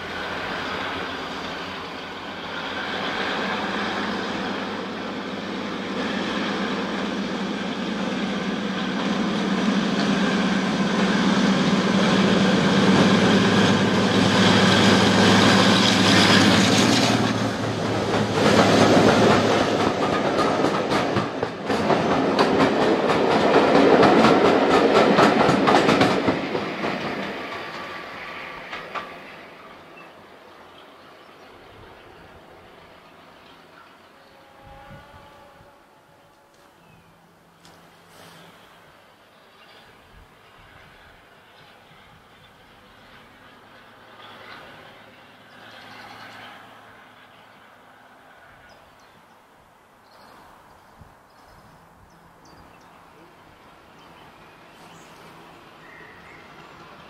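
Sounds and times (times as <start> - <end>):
diesel locomotive engine drone: 0.0 - 57.0
train wheels clickety-clack: 11.0 - 29.6.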